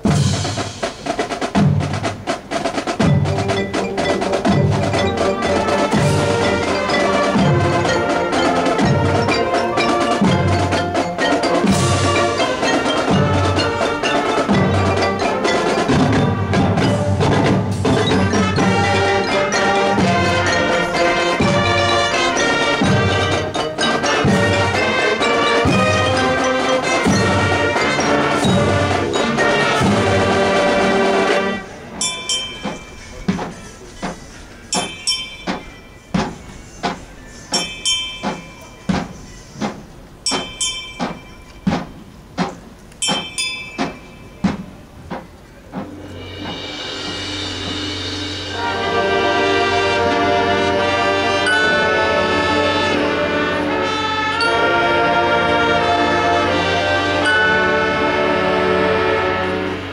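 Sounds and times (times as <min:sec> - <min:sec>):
marching band playing: 0:00.0 - 0:59.9.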